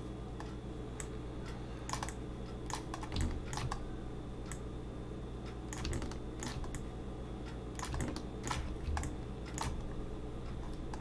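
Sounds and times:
steady low hum: 0.0 - 11.0
computer keyboard and mouse clicks: 1.9 - 3.8, 5.7 - 6.9, 7.8 - 9.9, 10.5 - 11.0.

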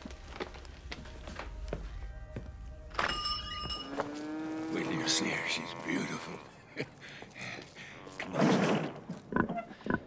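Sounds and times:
short high ringing tone: 3.0 - 4.0
cow mooing: 3.8 - 6.6.

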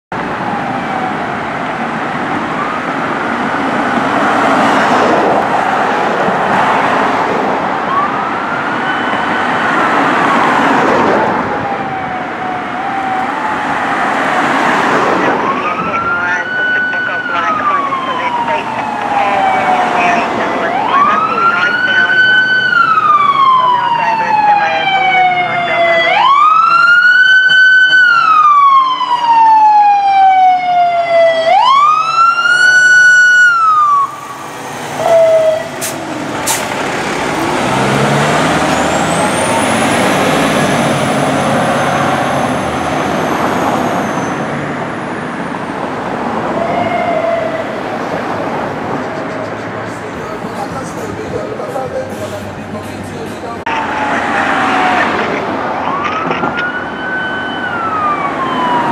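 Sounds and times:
fire engine siren wailing: 0.1 - 52.8, 53.6 - 58.9
street traffic: 0.1 - 58.9
fire engine engine rumble: 15.1 - 58.9.

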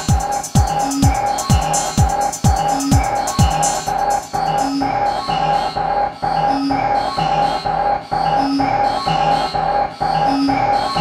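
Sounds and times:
repeating electronic beat: 0.0 - 11.0.

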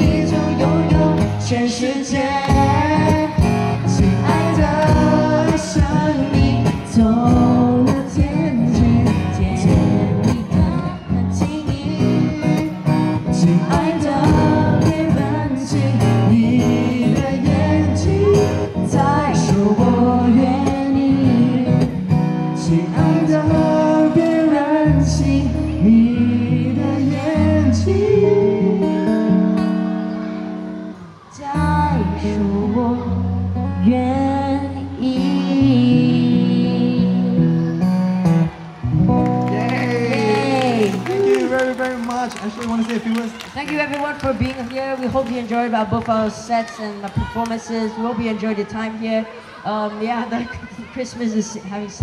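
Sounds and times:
person singing lead vocal: 0.0 - 30.4, 31.2 - 38.2, 39.4 - 41.8
acoustic guitar: 0.0 - 52.0.

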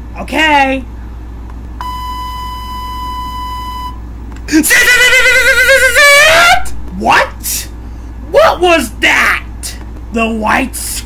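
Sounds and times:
low hum: 0.8 - 8.4
high electronic beep tone: 1.8 - 4.0.

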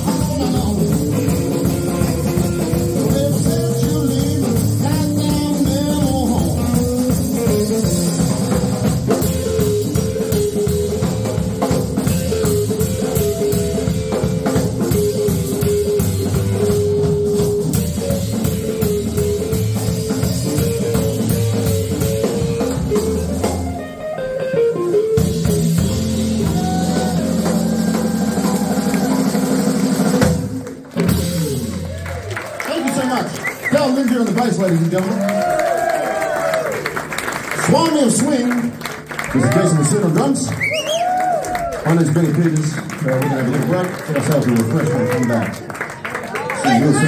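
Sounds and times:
bent guitar notes: 0.0 - 32.0
electric blues band playing: 0.0 - 47.0.

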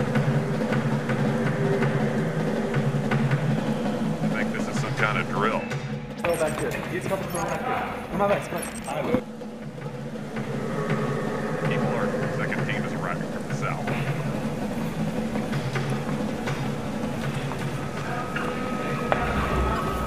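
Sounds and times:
indistinct background voices: 0.0 - 20.0
steady low hum: 0.0 - 20.0.

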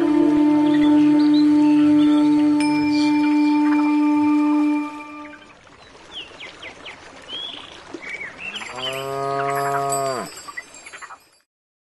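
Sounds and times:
cow mooing: 8.7 - 10.3.

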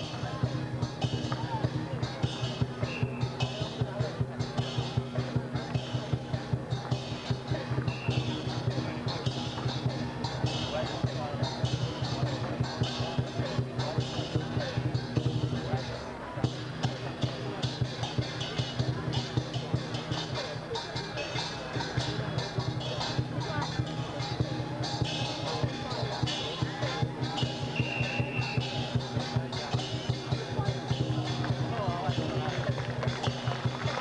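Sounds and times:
cymbals clashing: 0.0 - 34.0
fast drumbeat: 0.0 - 34.0.

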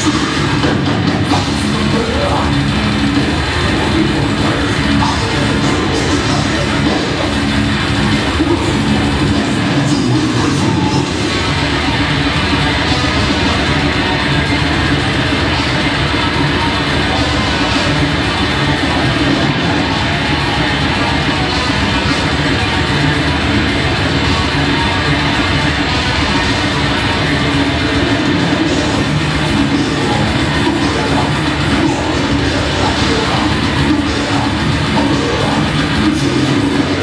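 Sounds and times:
drum kit: 0.0 - 37.0
heavily distorted guitar: 0.0 - 37.0.

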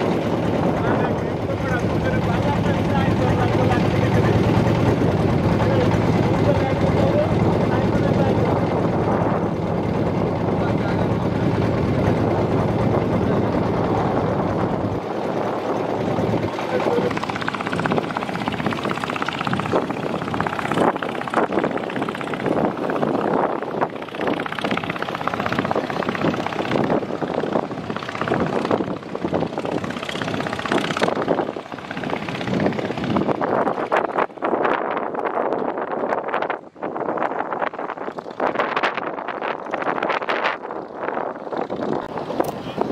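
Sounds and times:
boat engine droning: 0.0 - 36.3, 37.1 - 42.9
rushing outdoor noise: 0.0 - 42.9.

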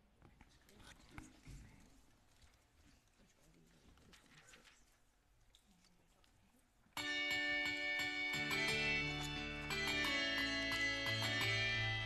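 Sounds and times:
soft rustles: 0.3 - 6.7.

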